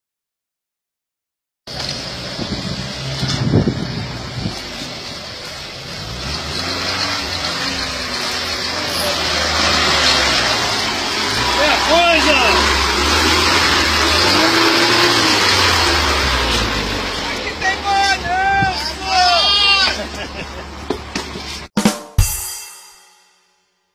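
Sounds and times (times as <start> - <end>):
car engine running under load: 1.7 - 21.7
people calling out: 17.1 - 20.5.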